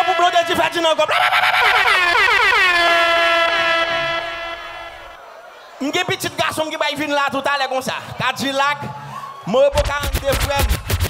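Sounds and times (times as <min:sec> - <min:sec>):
air horn blast: 0:02.1 - 0:05.2.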